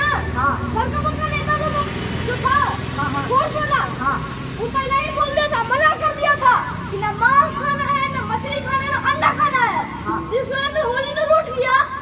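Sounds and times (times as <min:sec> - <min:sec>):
boy speaking: 0:00.0 - 0:12.0.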